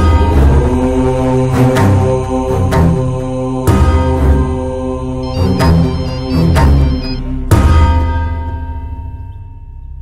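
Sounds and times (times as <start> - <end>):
chant-like drone music: 0.0 - 8.3.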